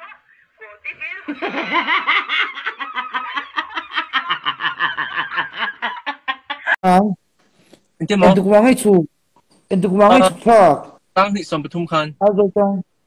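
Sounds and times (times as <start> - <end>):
woman laughing hard: 1.3 - 6.8.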